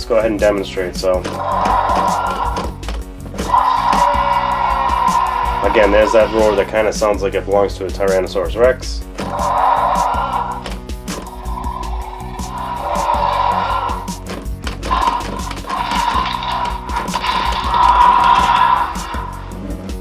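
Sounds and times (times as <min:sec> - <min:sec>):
background music: 0:00.0 - 0:20.0
toy dinosaur roars: 0:01.1 - 0:06.8, 0:09.2 - 0:19.7.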